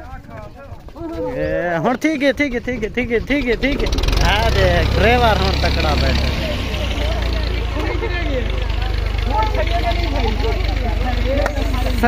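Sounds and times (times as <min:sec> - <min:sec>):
men talking: 0:00.0 - 0:12.0
diesel tractor engine idling: 0:02.4 - 0:12.0.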